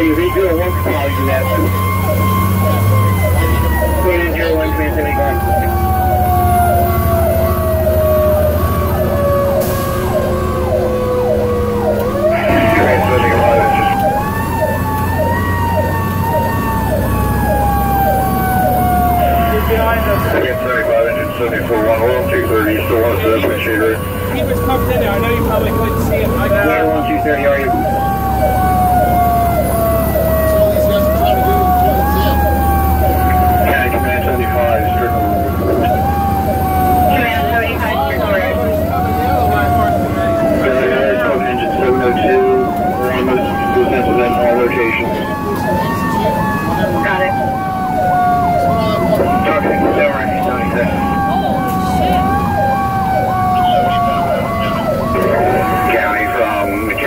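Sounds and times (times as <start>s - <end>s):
low truck drone: 0.0s - 57.0s
mechanical siren wailing: 0.0s - 57.0s.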